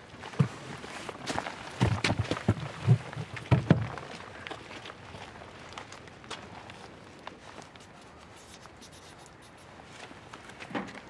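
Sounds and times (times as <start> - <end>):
pen scratching on paper card: 7.8 - 9.7.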